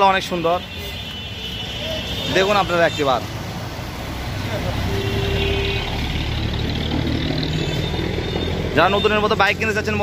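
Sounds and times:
vehicle engines droning: 0.0s - 10.0s.

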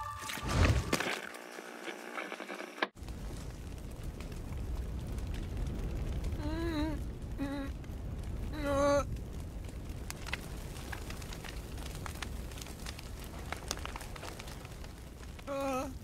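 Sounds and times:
faint crackles: 0.2s - 16.0s
low rumble: 3.0s - 15.5s.

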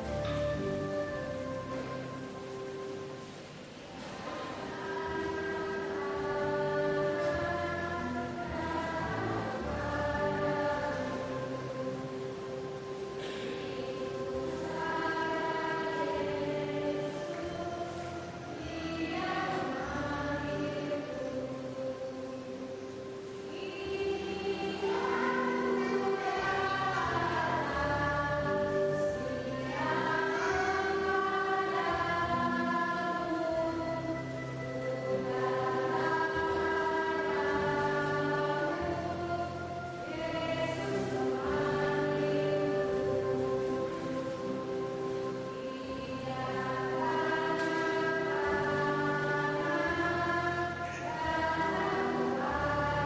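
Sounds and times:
church hymn music chord: 0.0s - 3.3s, 4.0s - 53.0s.

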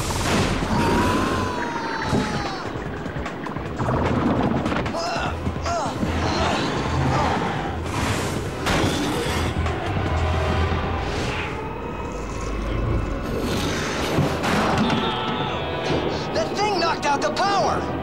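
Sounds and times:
action underscore music: 0.0s - 18.0s.

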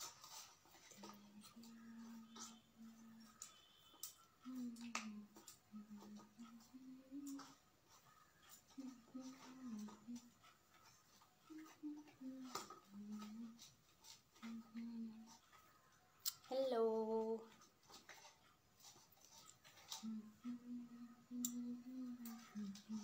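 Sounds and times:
faint voice murmuring: 4.4s - 10.4s
drawn-out vocal sound: 20.0s - 23.0s.

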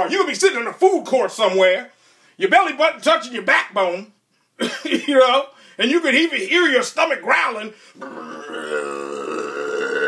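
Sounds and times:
man imitating stomach growl: 8.0s - 10.0s.

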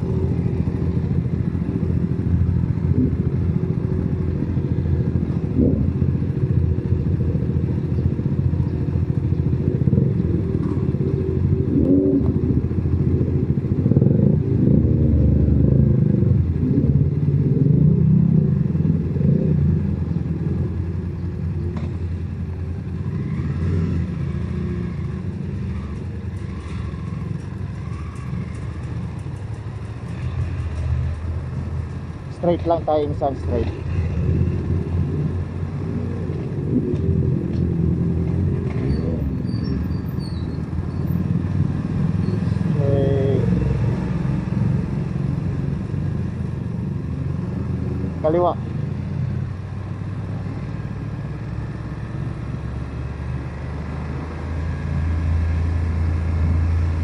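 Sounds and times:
motorcycle engine running: 0.0s - 53.5s.

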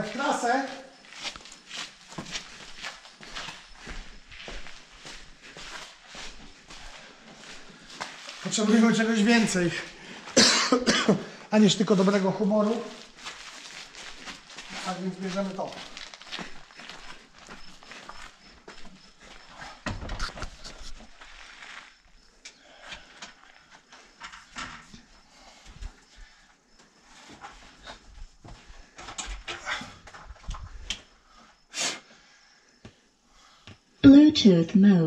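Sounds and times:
footsteps on gravel: 0.0s - 10.6s, 11.6s - 22.3s.

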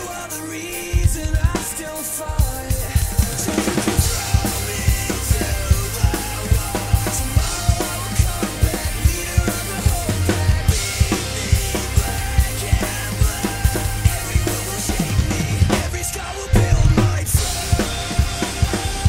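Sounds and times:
backing track music: 0.0s - 19.0s
drum kit rock beat: 0.0s - 19.0s.

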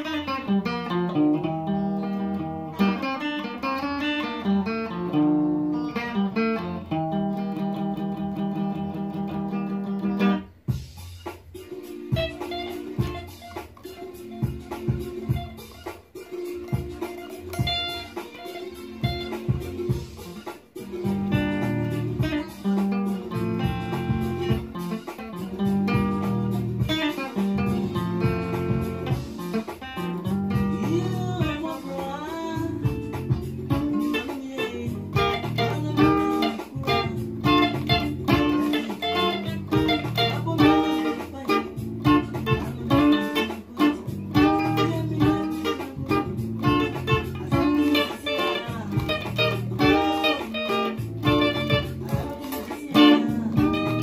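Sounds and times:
electric guitar lead lines: 0.0s - 10.8s, 11.5s - 54.0s.

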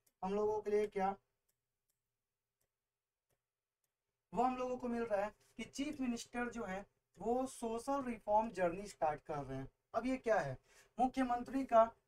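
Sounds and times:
person speaking: 0.0s - 1.4s, 4.3s - 12.0s.

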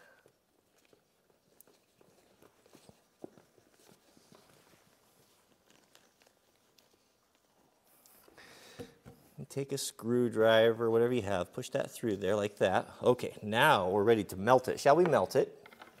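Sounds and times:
faint ticks and rustles: 0.0s - 8.4s.

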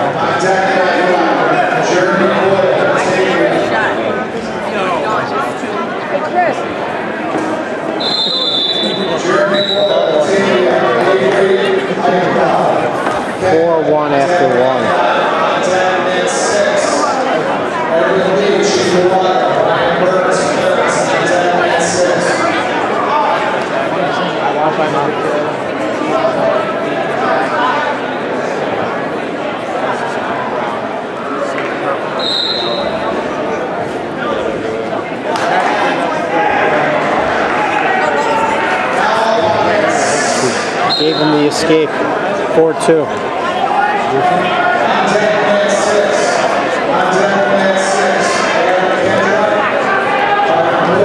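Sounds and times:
crowd voices: 0.0s - 51.0s
referee's whistle blasts: 8.0s - 10.2s, 32.2s - 33.0s, 40.8s - 41.5s.

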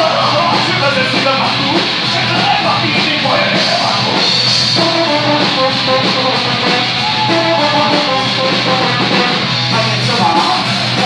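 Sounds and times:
drum kit: 0.0s - 11.0s.

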